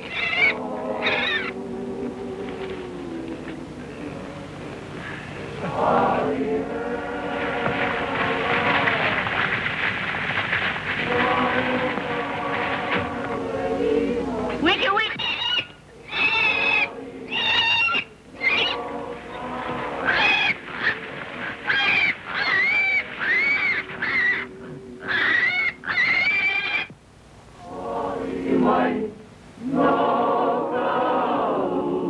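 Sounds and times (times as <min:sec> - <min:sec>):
high-pitched vocal cries: 0:00.0 - 0:01.6
group of voices chanting: 0:18.4 - 0:21.7.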